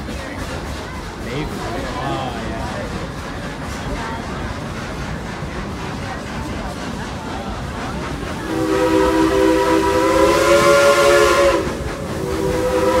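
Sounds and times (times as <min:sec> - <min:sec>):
steam locomotive chime whistle: 0:08.5 - 0:13.0.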